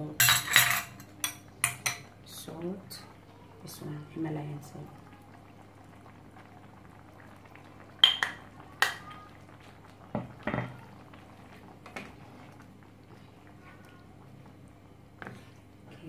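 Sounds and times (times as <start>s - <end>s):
curry bubbling in a pan: 1.2s - 16.0s.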